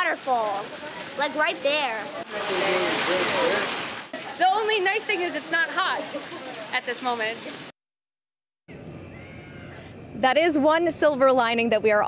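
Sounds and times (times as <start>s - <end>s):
rainwater pouring off awning: 0.0s - 7.7s.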